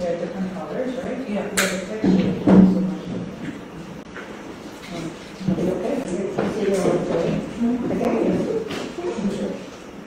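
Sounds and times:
indistinct talk of people: 0.0s - 10.0s.

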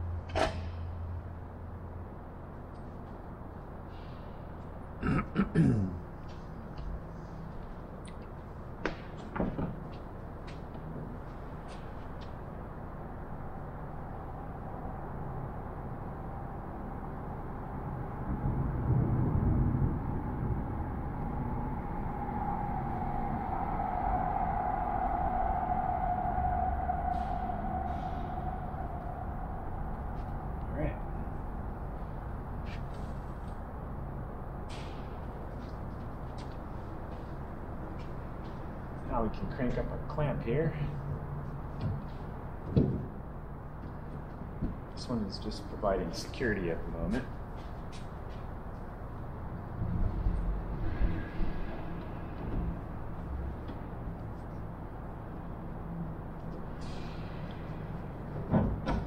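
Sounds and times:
low hall hum: 0.0s - 59.0s
low rumble: 9.6s - 40.1s
mid-pitched hum: 10.3s - 42.6s.

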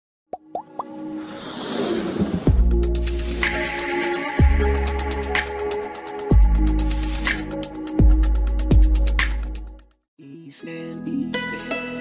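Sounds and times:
rising electronic plops: 0.3s - 1.0s.

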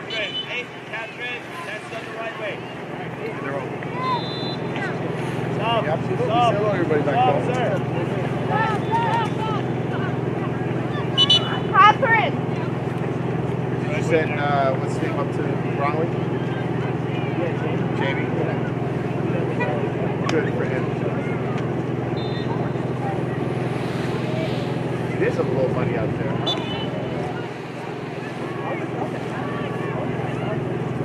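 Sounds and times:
distant shouts and calls: 0.0s - 6.3s, 7.0s - 13.0s, 20.9s - 25.2s, 26.3s - 31.0s.

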